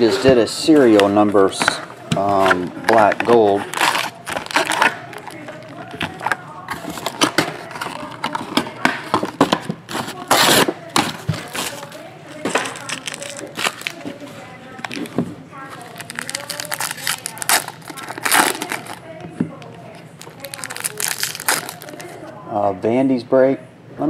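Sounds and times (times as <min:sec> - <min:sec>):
foil wrapper crinkling and tearing: 0:00.9 - 0:08.5, 0:09.3 - 0:19.0, 0:20.2 - 0:22.2.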